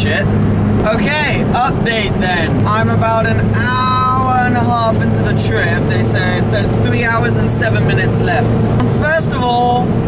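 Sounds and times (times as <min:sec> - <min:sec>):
man's wordless vocal: 0:00.0 - 0:09.9
car engine drone: 0:00.0 - 0:10.0
road noise inside car: 0:00.0 - 0:10.0.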